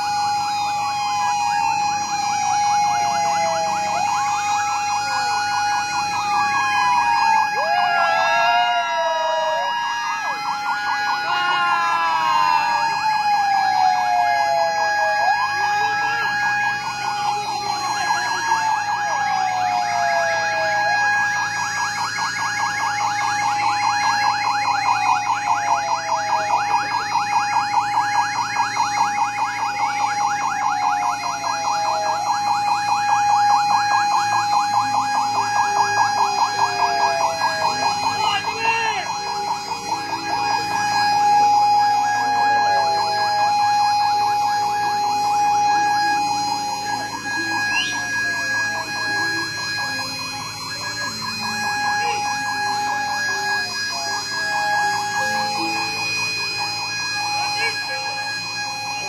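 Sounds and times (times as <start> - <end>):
sirens wailing: 0.0 - 59.0
steady siren tone: 0.0 - 59.0
warbling siren yelp: 0.0 - 59.0.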